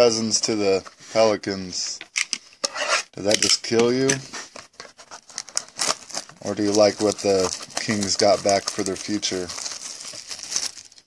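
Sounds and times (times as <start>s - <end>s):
plastic wrapper crinkling and tearing: 4.8s - 11.0s.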